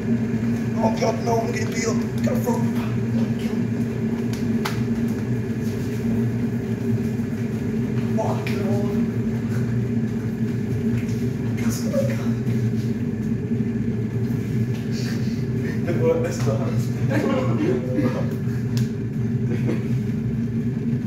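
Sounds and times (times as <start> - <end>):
electrical appliance humming: 0.0 - 21.0.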